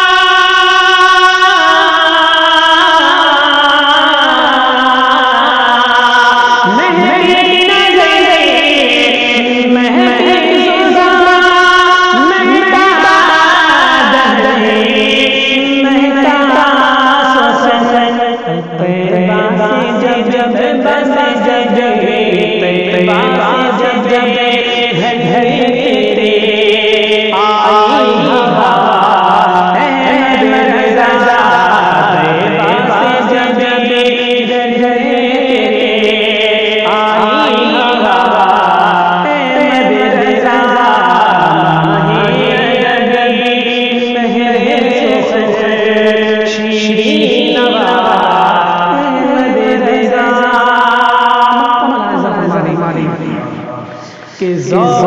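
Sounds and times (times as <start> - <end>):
man chanting melodically: 0.0 - 55.0
other voices chanting: 35.2 - 55.0.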